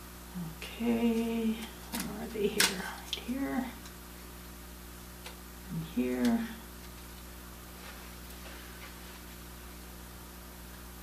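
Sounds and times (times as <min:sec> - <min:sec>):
woman humming: 0:00.3 - 0:02.6, 0:05.7 - 0:06.6.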